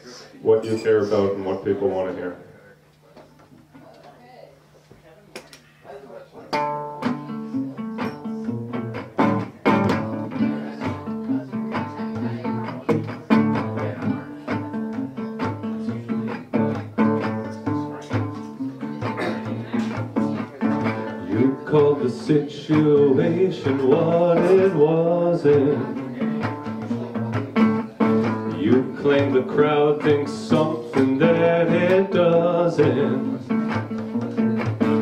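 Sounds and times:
resonator guitar plucked notes: 0:06.5 - 0:35.0.

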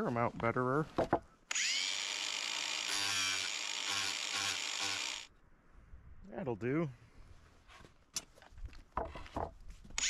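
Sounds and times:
angle grinder whining: 0:01.5 - 0:05.3.

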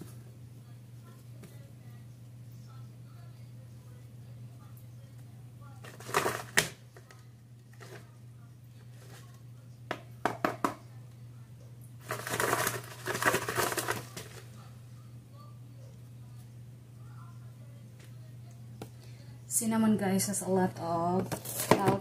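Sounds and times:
steady low hum: 0:00.0 - 0:22.0
shaker bottle rattling: 0:05.9 - 0:06.7, 0:12.0 - 0:14.4.

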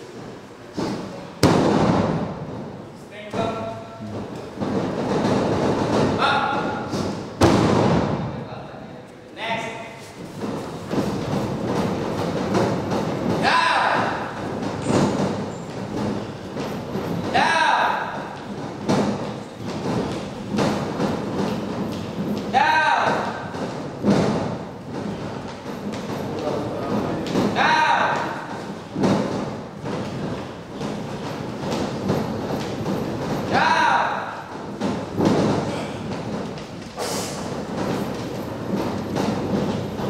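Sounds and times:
body slamming onto wrestling ring: 0:07.4 - 0:08.2.

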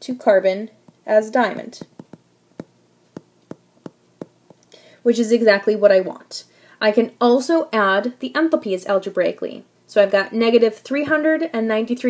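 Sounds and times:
stylus tapping on tablet screen: 0:00.9 - 0:04.6.

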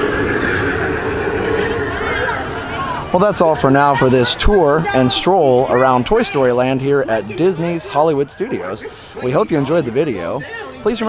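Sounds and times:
riders screaming and cheering: 0:00.0 - 0:06.6
roller coaster rumbling on track: 0:00.0 - 0:11.0.

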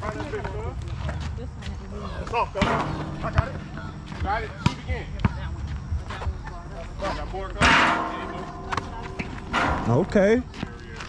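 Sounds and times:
basketball bouncing on concrete: 0:02.6 - 0:06.3, 0:08.3 - 0:11.0.

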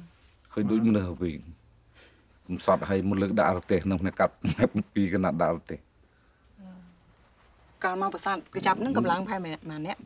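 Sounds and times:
high-pitched insect drone: 0:00.0 - 0:10.0
man speaking: 0:00.5 - 0:01.6, 0:02.5 - 0:05.8.

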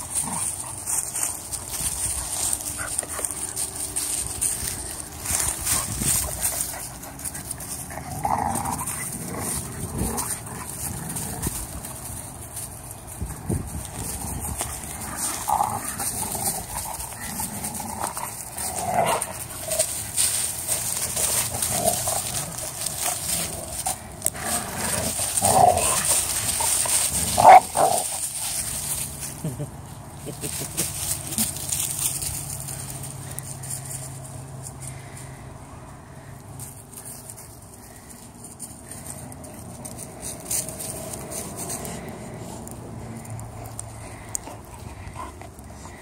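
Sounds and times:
dogs scuffling in dry leaves: 0:00.0 - 0:46.0.

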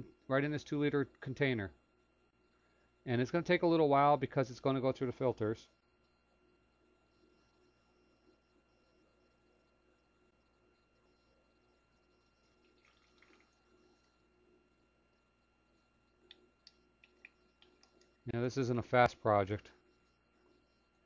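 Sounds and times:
faint steady hum: 0:00.0 - 0:21.0
oil dripping into plastic bottle: 0:12.6 - 0:13.6.

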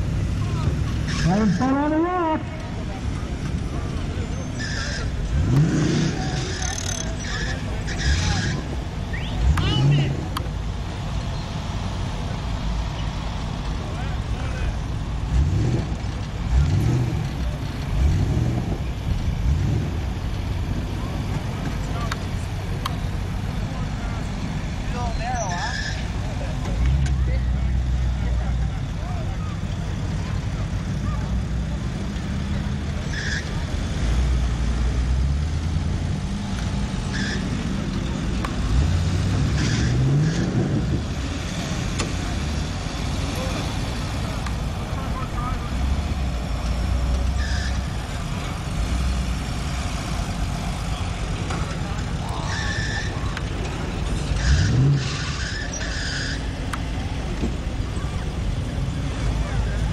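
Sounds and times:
jeep engine revving: 0:00.0 - 0:59.9.

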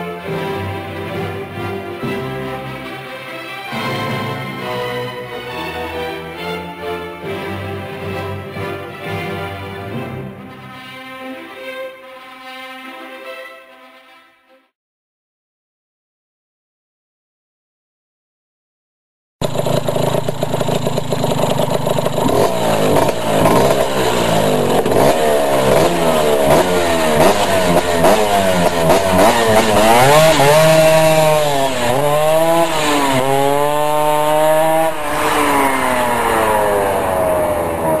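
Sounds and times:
scooter engine revving: 0:19.4 - 0:38.0.

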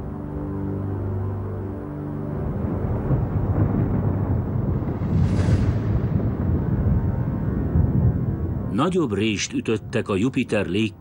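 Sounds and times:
deep continuous rumbling: 0:00.0 - 0:11.0.

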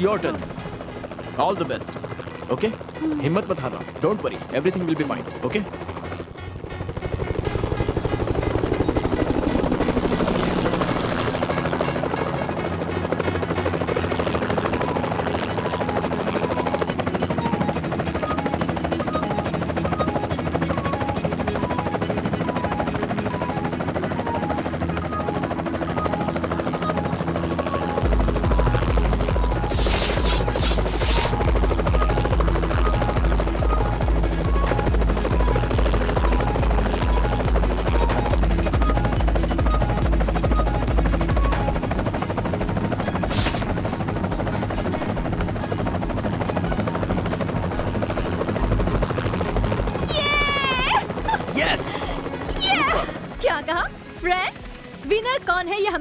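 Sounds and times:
background music: 0:00.0 - 0:56.0
helicopter rotor beating: 0:00.0 - 0:56.0
high hissing bursts: 0:29.7 - 0:31.4.

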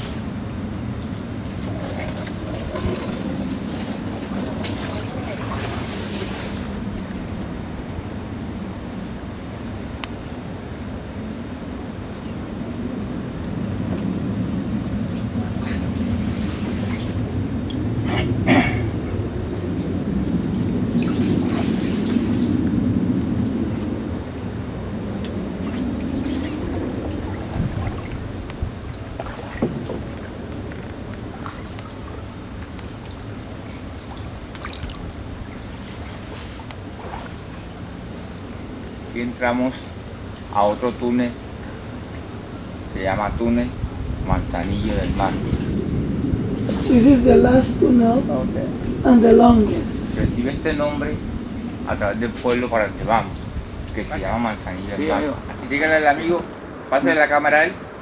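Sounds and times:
small boat engine rumble: 0:00.0 - 0:58.0.

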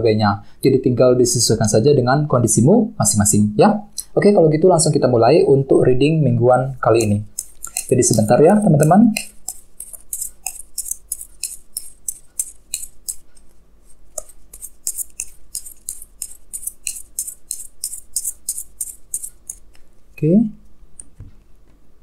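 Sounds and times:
cards being shuffled by hand: 0:07.0 - 0:19.9.

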